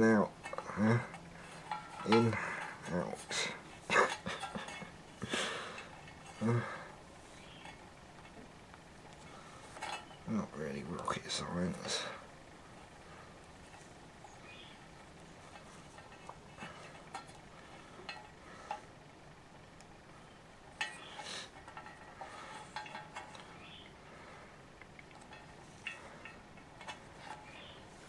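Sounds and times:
wires rustling and clicking: 0:00.0 - 0:28.0.

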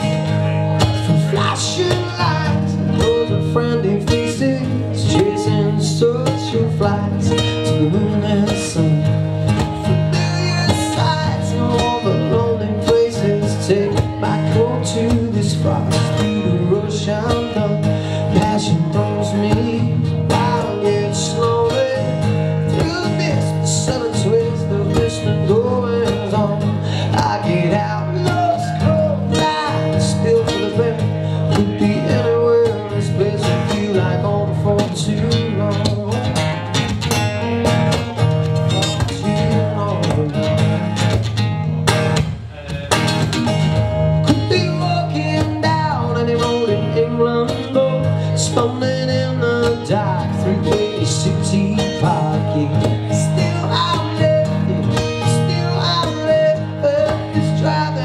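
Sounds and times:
acoustic guitars strummed: 0:00.0 - 0:58.0.

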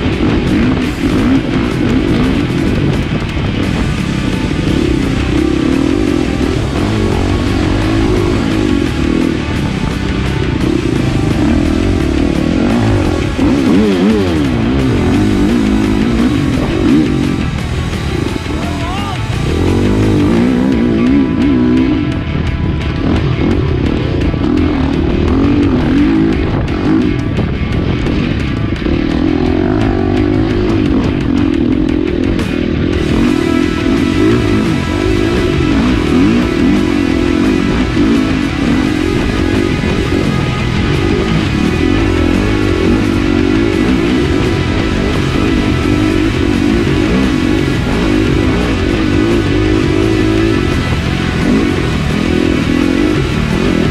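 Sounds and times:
background music: 0:00.0 - 0:53.9
dirt bike engine revving: 0:00.0 - 0:53.9.

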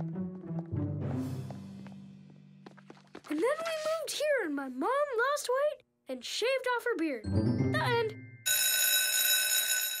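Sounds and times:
electric school bell ringing: 0:08.2 - 0:10.0.

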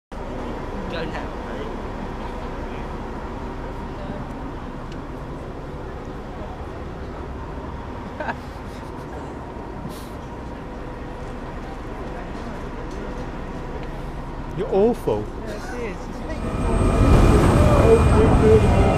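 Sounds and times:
passenger chatter: 0:00.1 - 0:18.9
boat engine rumbling: 0:16.0 - 0:18.9.

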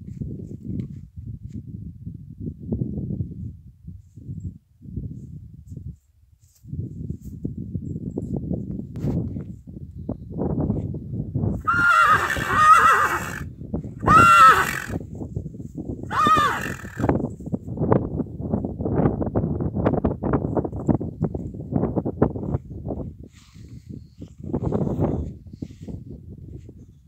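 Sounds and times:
horse whinnying: 0:11.6 - 0:15.0, 0:16.1 - 0:17.1.

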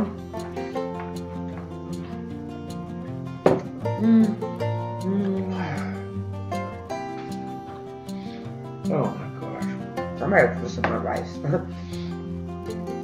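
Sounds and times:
mandolin and acoustic guitar music: 0:00.0 - 0:13.0
murmured voice: 0:05.0 - 0:06.1.

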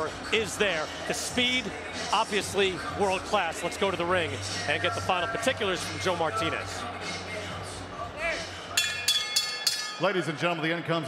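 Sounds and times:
boxing ring bell ringing: 0:08.8 - 0:10.8.

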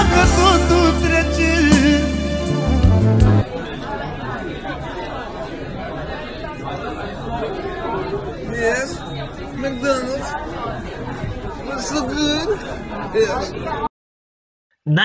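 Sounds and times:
song playing: 0:00.0 - 0:03.4
chatter of many diners: 0:00.0 - 0:13.9.

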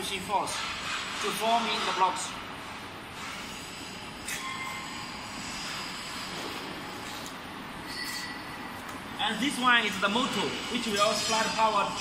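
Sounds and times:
workshop background noise: 0:00.0 - 0:12.0
brief high-pitched squeals: 0:04.3 - 0:05.1, 0:07.9 - 0:08.5.

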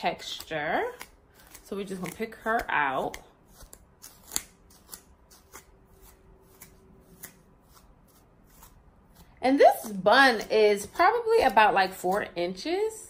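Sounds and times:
comb scratching through hair: 0:00.0 - 0:12.9.

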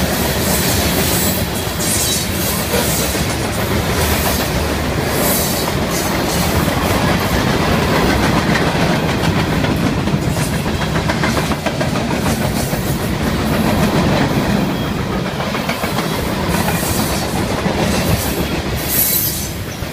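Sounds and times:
train wheels rumbling on rails: 0:00.0 - 0:19.9.

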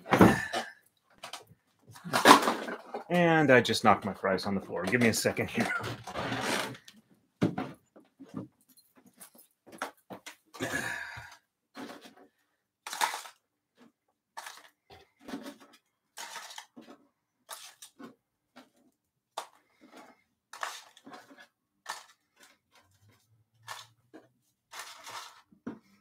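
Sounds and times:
rustling and clinking of handled objects: 0:04.8 - 0:10.8, 0:11.7 - 0:26.0.

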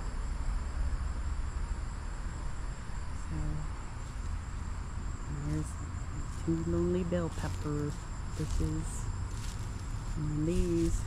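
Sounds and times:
insects trilling: 0:00.0 - 0:11.0.

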